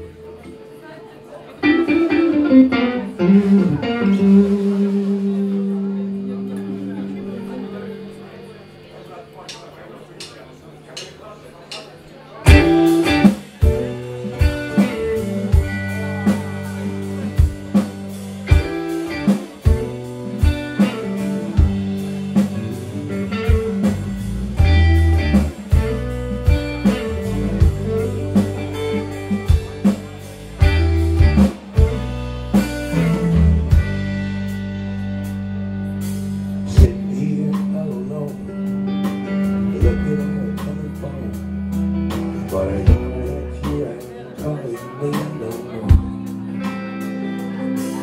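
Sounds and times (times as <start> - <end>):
blues band playing: 0.0 - 48.0.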